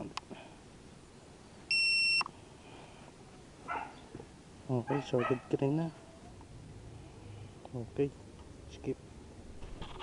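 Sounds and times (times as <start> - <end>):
electronic beep: 1.7 - 2.3.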